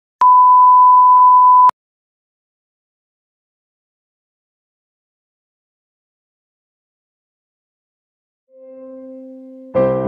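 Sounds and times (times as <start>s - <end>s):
steady pure beep: 0.2s - 1.7s.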